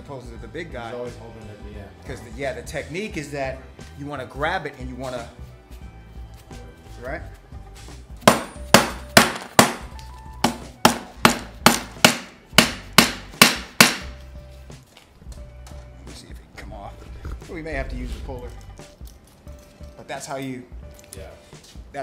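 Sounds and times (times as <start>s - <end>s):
hammer knocking on metal wheel: 10.4s - 14.1s.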